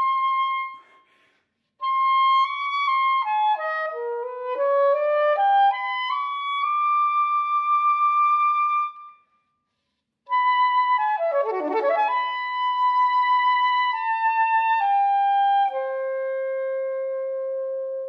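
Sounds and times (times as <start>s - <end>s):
soprano saxophone melody: 1.8s - 9.1s, 10.3s - 18.0s.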